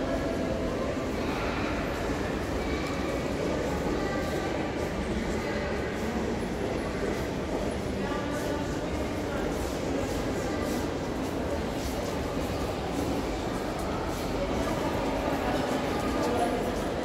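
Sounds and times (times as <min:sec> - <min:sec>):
low rumble of indoor hall: 0:00.0 - 0:17.0.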